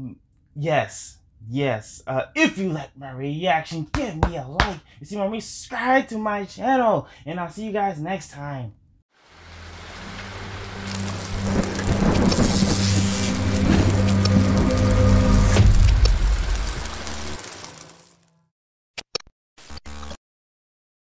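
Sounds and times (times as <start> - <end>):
rain: 9.2 - 18.3
low steady droning tone: 9.4 - 16.9
thunder: 10.8 - 17.4.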